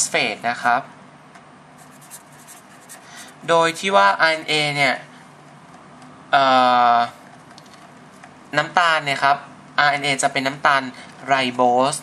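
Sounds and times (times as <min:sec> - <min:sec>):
marker pen scratching on paper: 0:01.8 - 0:03.4.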